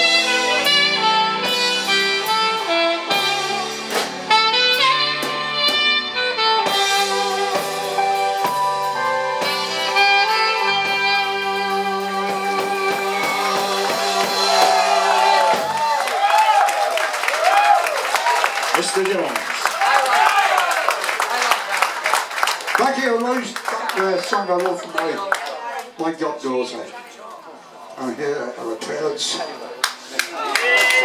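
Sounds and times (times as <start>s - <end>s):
saxophone long notes: 0.0s - 15.6s
electric guitar: 0.0s - 15.8s
keyboards: 0.0s - 15.8s
drums: 0.0s - 24.4s.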